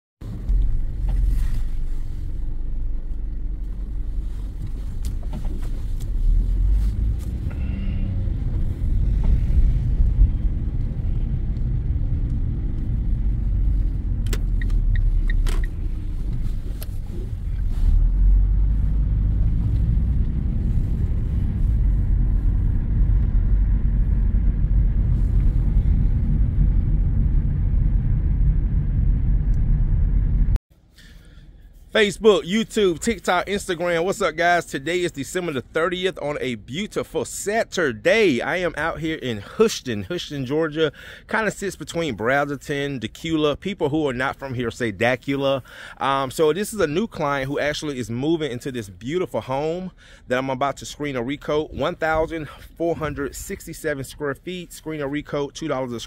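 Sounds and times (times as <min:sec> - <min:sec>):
car engine and road rumble: 0:00.2 - 0:56.0.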